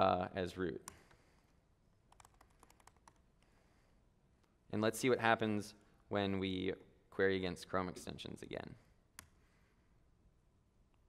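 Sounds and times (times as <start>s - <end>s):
faint keyboard typing: 0.8s - 3.6s.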